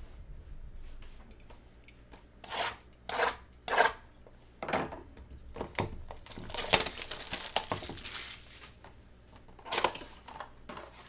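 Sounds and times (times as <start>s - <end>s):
shrink wrap being scraped open: 6.1s - 8.8s.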